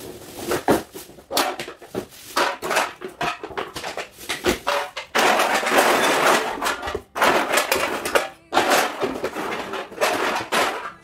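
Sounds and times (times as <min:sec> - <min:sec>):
cans and bottles rattling: 0:00.0 - 0:11.0.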